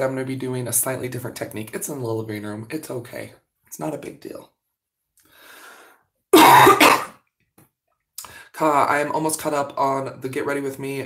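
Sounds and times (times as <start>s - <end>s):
woman coughing: 6.4s - 7.2s.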